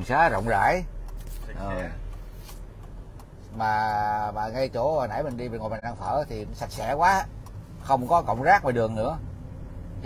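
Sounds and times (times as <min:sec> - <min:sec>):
low road rumble: 0:00.0 - 0:10.0.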